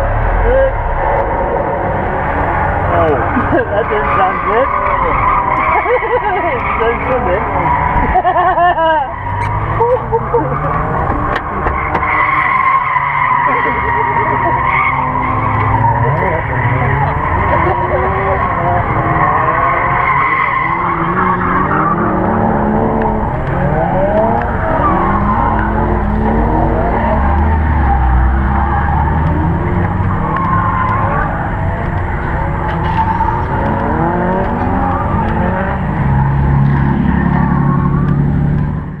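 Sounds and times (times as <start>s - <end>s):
people's voices: 0.0s - 38.1s
car engine revving hard: 0.0s - 39.0s.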